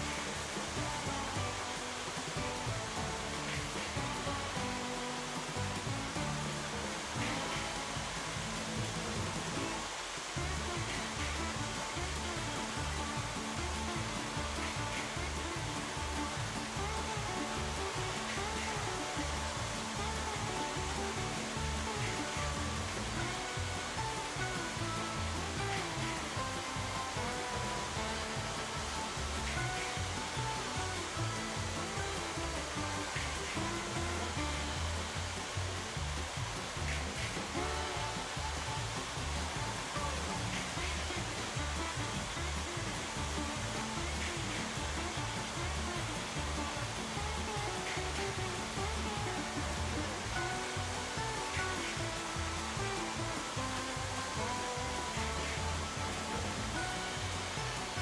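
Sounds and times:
toy train motors whirring: 0:00.0 - 0:58.0
wheels rumbling over rail joints: 0:00.0 - 0:58.0.

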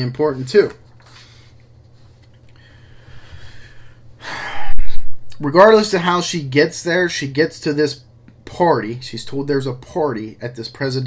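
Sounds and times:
man breathing loudly: 0:02.6 - 0:05.1.

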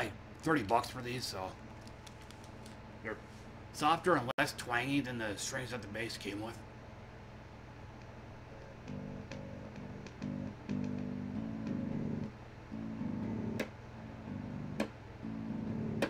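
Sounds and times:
low amp hum: 0:00.0 - 0:16.0
electric bass plucked notes: 0:08.8 - 0:16.0.

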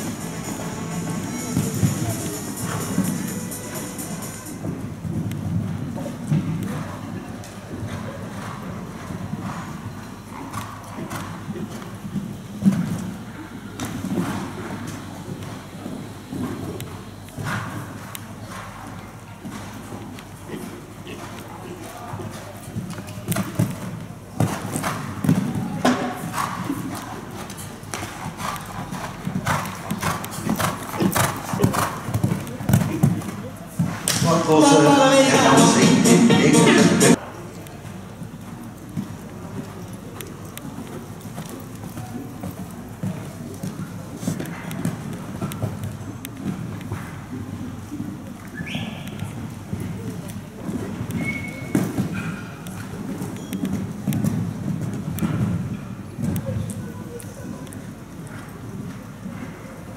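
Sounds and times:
hooves cantering on sand: 0:00.0 - 0:34.2, 0:37.1 - 0:59.9
indistinct voices: 0:34.1 - 0:37.2.

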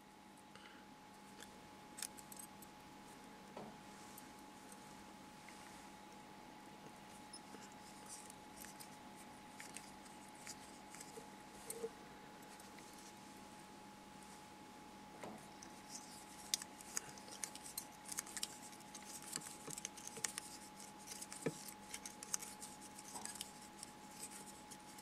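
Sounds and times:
faint hum: 0:00.0 - 0:25.0
small clicks of hands working: 0:07.3 - 0:13.1, 0:15.2 - 0:25.0.

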